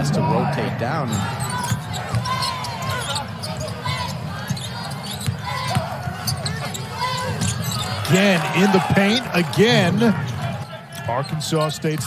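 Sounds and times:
murmur of crowd: 0:00.0 - 0:12.0
sneakers squeaking on floor: 0:01.0 - 0:08.5, 0:10.2 - 0:12.0.

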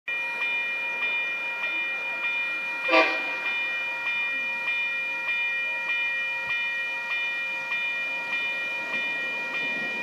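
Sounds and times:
level crossing warning bell ringing: 0:00.1 - 0:10.0.

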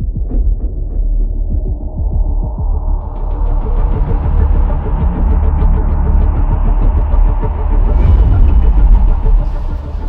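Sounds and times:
deep rumble: 0:07.2 - 0:10.0.

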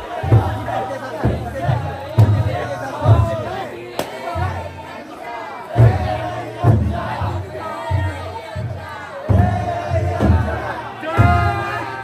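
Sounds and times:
big taiko drum strokes: 0:00.0 - 0:04.8, 0:05.8 - 0:12.0
crowd shouting a chant: 0:00.0 - 0:12.0.

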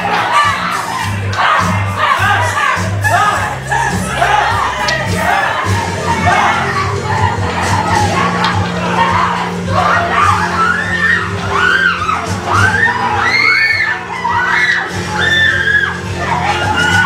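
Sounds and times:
low background music: 0:00.0 - 0:17.0
people screaming and wailing: 0:00.0 - 0:17.0.

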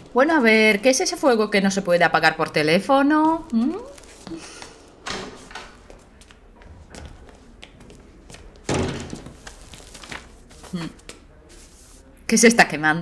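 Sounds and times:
door opening and shutting: 0:05.0 - 0:05.8, 0:08.6 - 0:09.6
knocks and thuds: 0:08.7 - 0:09.5.

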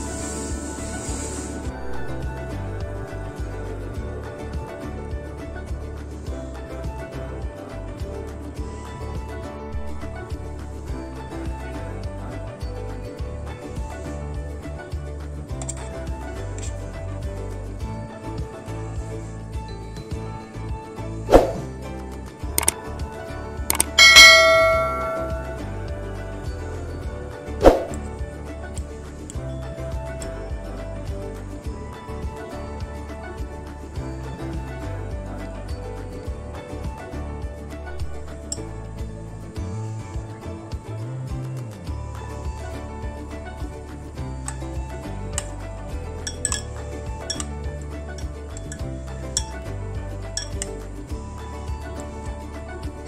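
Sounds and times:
background music: 0:00.0 - 0:53.0
bell chime: 0:23.7 - 0:27.6
cutlery clinking on ceramic bowl: 0:46.2 - 0:47.5, 0:50.4 - 0:50.7.

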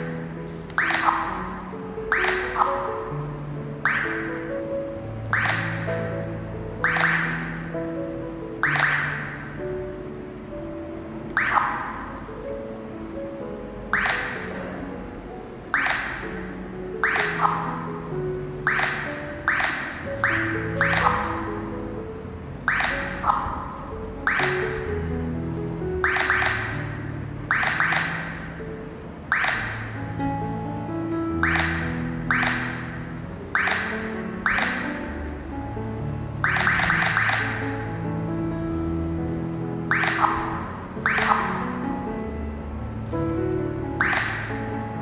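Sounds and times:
soft background music: 0:00.0 - 0:45.0
touchscreen tap clicks: 0:05.3 - 0:05.8, 0:06.8 - 0:07.3, 0:13.9 - 0:14.4, 0:18.7 - 0:21.3, 0:44.0 - 0:44.4.

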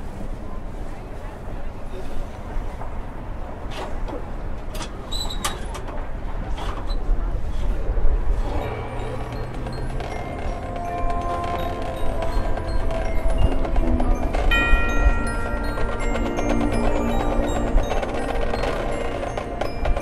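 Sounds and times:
high held tones: 0:08.4 - 0:20.0
sharp percussion clicks: 0:08.6 - 0:20.0
marching band music: 0:08.7 - 0:20.0.

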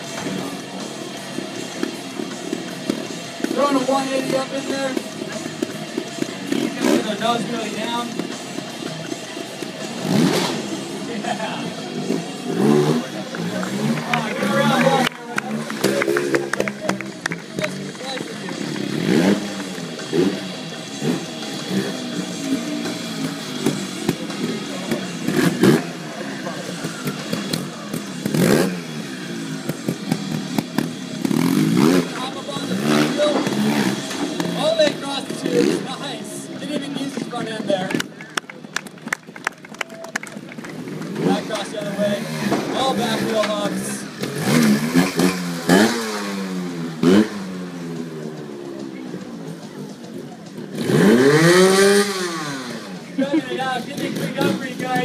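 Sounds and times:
motorcycle engine revving: 0:00.0 - 0:55.0.

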